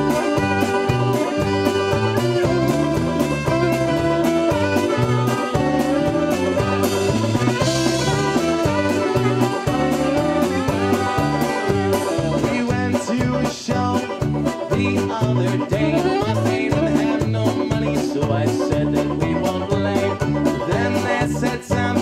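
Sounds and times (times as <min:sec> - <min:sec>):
polka band playing: 0:00.0 - 0:22.0.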